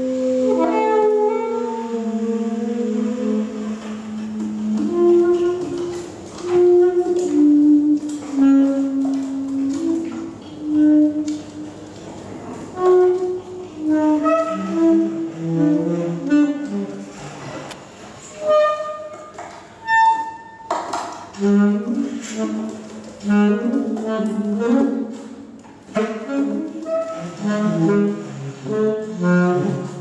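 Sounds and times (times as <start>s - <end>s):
saxophones playing free jazz: 0.0s - 20.7s, 21.3s - 30.0s.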